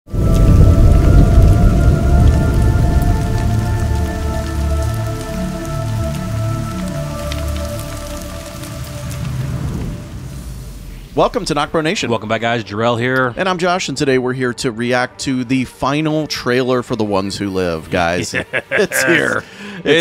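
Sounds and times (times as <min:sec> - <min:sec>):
faint crackles: 0:00.1 - 0:12.1
droning tones: 0:00.1 - 0:12.2
low rumbling hit: 0:00.1 - 0:12.6.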